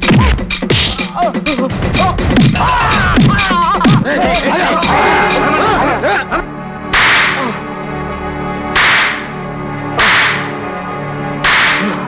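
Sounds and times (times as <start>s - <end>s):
background music: 0.0s - 12.0s
whip cracks: 7.0s - 7.5s, 8.8s - 9.3s, 10.0s - 10.6s, 11.4s - 12.0s.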